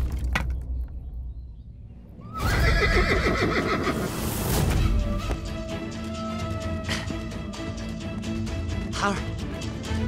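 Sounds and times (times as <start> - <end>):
horse whinnying loudly: 2.3 - 4.1.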